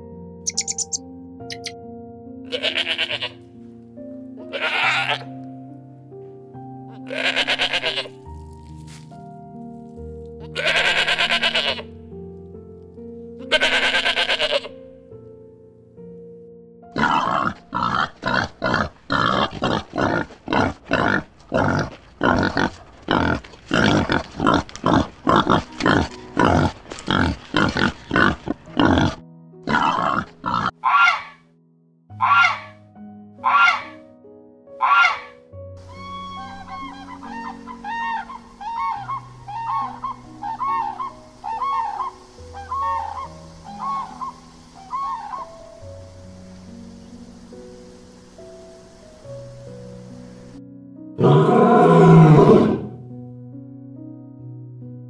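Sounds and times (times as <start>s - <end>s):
soft background music: 0.0s - 55.0s
goose calls: 30.5s - 31.4s, 32.2s - 32.8s, 33.4s - 34.0s, 34.8s - 45.5s
fast run of animal calls: 32.2s - 32.7s, 33.4s - 34.0s, 34.8s - 45.6s.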